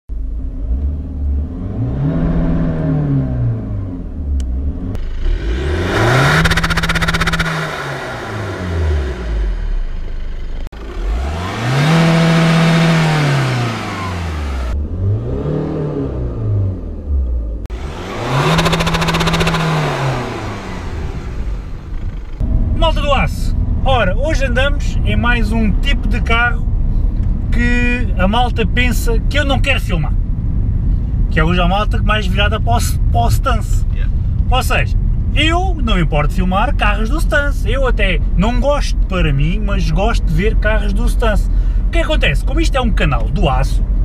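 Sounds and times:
diesel engine revving: 0:00.2 - 0:27.3.

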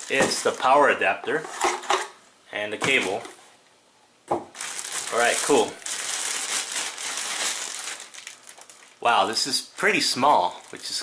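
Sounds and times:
plastic bag crinkling: 0:00.0 - 0:01.0, 0:04.5 - 0:11.0.

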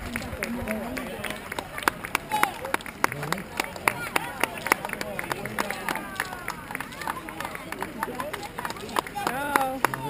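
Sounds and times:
hand claps: 0:00.0 - 0:10.0
spectators cheering and calling out: 0:00.0 - 0:10.0.

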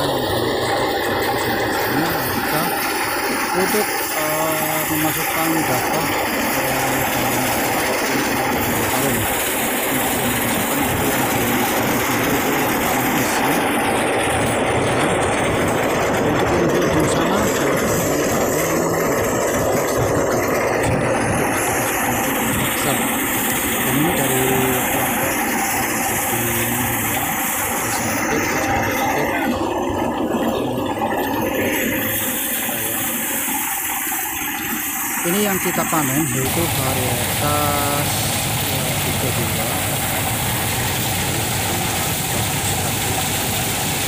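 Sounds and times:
thresher machine running: 0:00.0 - 0:44.0.

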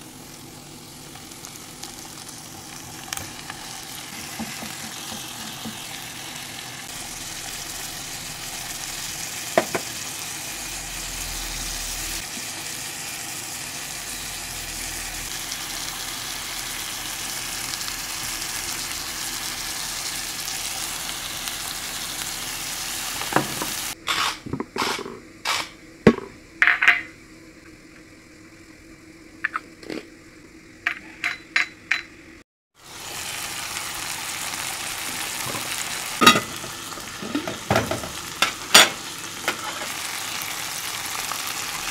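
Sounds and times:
meat and onions sizzling in a pan: 0:00.0 - 0:24.0, 0:32.8 - 0:41.9.

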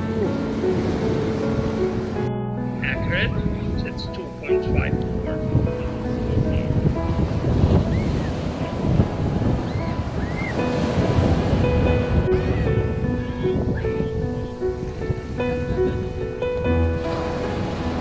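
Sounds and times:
ocean surf breaking on beach: 0:00.0 - 0:18.0
soft background music: 0:00.0 - 0:18.0
wind on microphone: 0:00.0 - 0:18.0.

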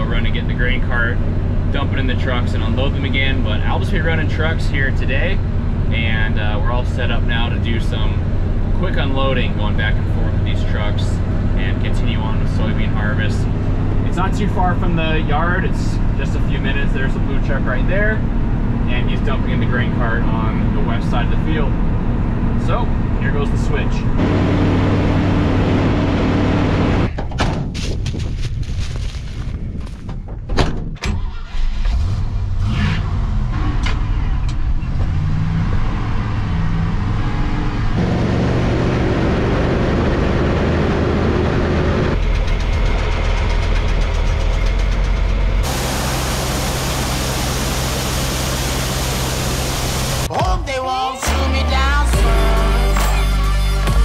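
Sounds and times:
truck engine running: 0:00.0 - 0:27.1, 0:34.2 - 0:50.4
grain auger running: 0:45.6 - 0:50.3
grain pouring into hopper: 0:45.6 - 0:50.3.

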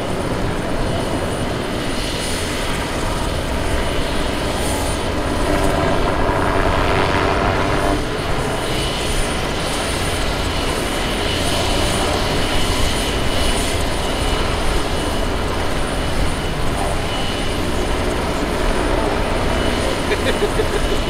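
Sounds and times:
airship propeller engines droning: 0:00.0 - 0:21.0.

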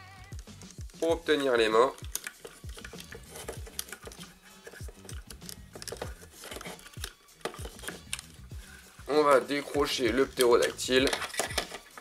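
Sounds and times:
plastic toy parts clicking: 0:00.3 - 0:08.4, 0:10.2 - 0:12.0
background music with bass beat: 0:02.6 - 0:12.0.

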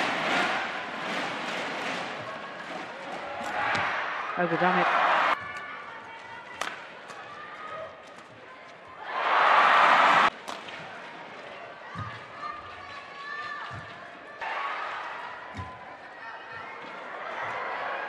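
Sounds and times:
crowd cheering: 0:03.0 - 0:07.8, 0:09.0 - 0:10.6, 0:14.4 - 0:18.0.

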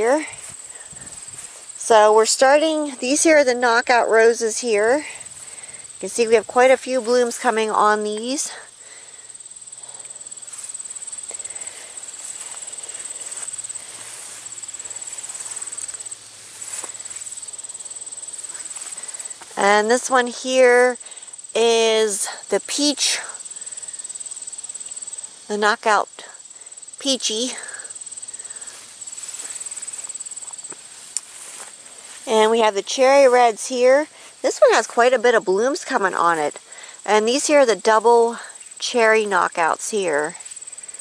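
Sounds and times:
faint footsteps: 0:00.0 - 0:21.0, 0:27.6 - 0:35.1
insects trilling: 0:00.0 - 0:41.0.

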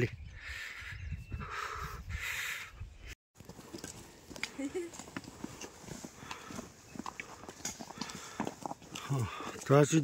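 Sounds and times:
footsteps on stone steps: 0:03.4 - 0:10.0.

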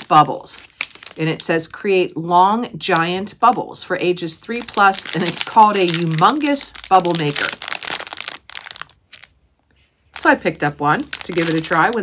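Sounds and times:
plastic packaging crinkling: 0:00.0 - 0:01.5, 0:04.4 - 0:12.0.

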